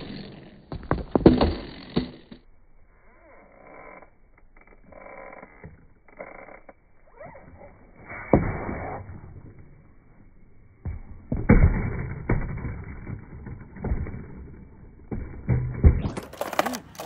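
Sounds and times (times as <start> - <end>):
skateboard smacking concrete: 0.0 - 2.4, 15.1 - 17.0
skateboard wheels rolling on concrete: 0.0 - 8.0, 8.7 - 17.0.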